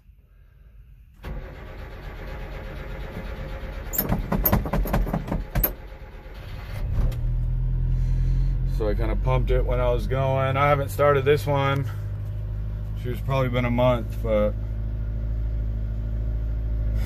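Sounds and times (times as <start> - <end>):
engine idling: 0.1 - 17.0
engine cranking on starter: 1.2 - 8.5
engine sputtering: 1.2 - 15.6.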